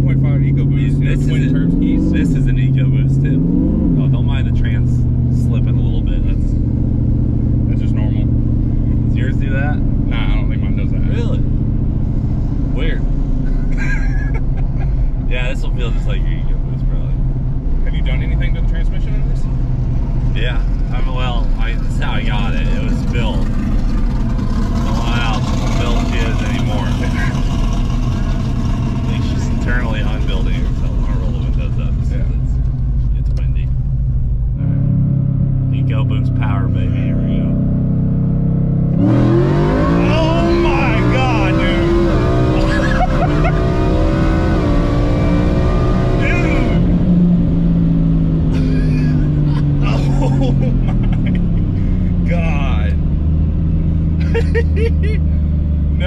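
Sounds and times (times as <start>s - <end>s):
person talking: 0.0s - 3.3s, 9.1s - 11.4s, 14.1s - 17.1s, 39.9s - 43.7s, 46.1s - 46.8s, 48.5s - 53.0s, 54.2s - 55.2s
supercharged truck engine running: 0.0s - 56.0s
people laughing: 13.4s - 15.7s, 42.5s - 43.8s, 48.6s - 52.2s, 54.2s - 55.3s.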